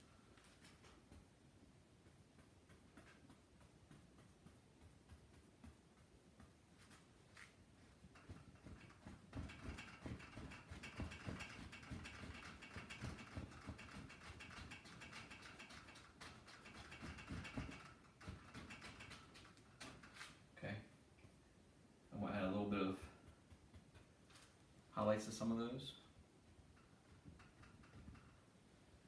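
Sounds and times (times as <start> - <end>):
paintbrush tapping on canvas: 0.8 - 20.0, 23.1 - 24.3.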